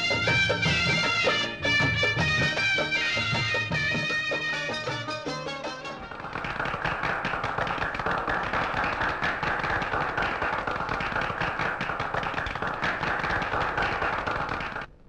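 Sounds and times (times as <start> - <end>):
song music: 0.0 - 6.2
crowd applauding: 6.1 - 14.9.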